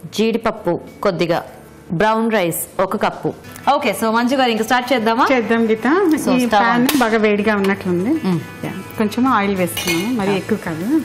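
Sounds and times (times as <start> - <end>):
women talking: 0.2 - 11.0
cooking pan clink: 9.7 - 10.4.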